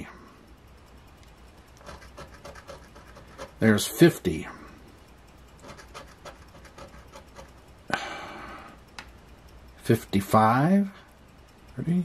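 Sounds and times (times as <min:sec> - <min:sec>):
faint small ticks: 0:00.1 - 0:03.7, 0:04.6 - 0:10.0
person breathing out sharply: 0:07.9 - 0:08.8.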